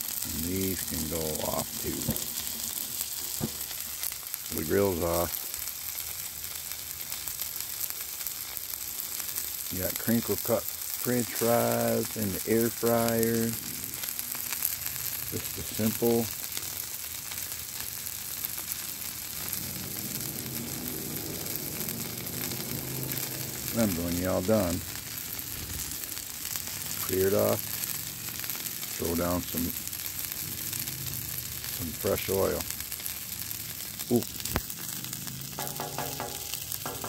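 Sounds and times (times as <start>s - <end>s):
burgers sizzling on a griddle: 0.0s - 37.0s.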